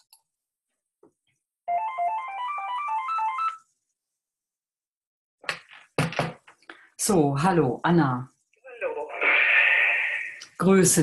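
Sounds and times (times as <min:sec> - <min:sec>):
phone ringtone: 0:01.7 - 0:03.6.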